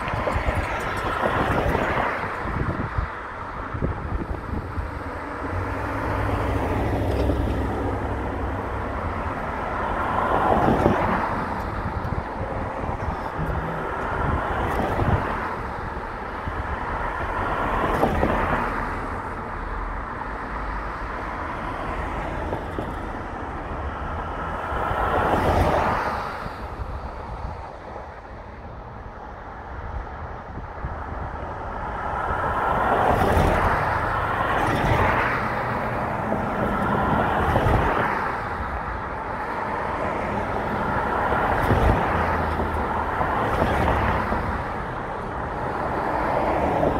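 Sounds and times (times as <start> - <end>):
traffic rumble of tyres and engines: 0.0 - 46.9
vehicles passing close by: 0.0 - 46.9.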